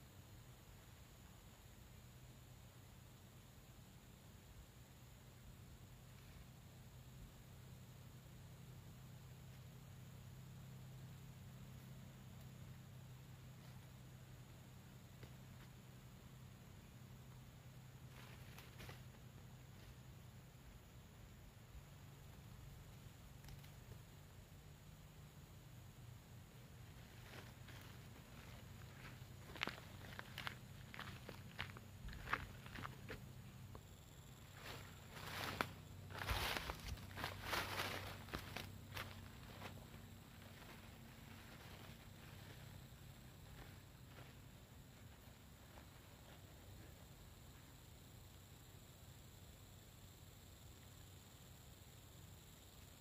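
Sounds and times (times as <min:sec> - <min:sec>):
faint low hum: 0:00.0 - 0:53.0
footsteps crunching on dry leaves: 0:26.9 - 0:33.2, 0:34.5 - 0:42.6.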